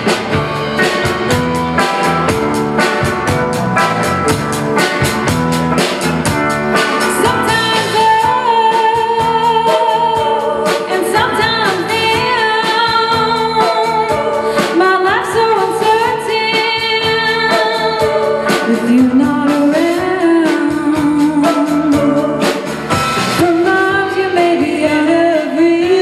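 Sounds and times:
bass guitar: 0:00.0 - 0:26.0
drum kit: 0:00.0 - 0:26.0
electric guitar: 0:00.0 - 0:26.0
person singing: 0:06.8 - 0:22.6, 0:23.4 - 0:26.0.

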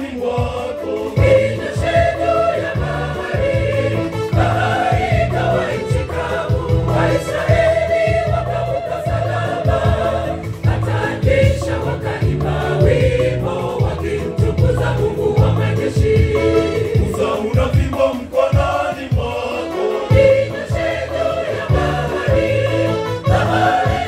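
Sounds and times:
gospel choir singing: 0:00.0 - 0:24.0.

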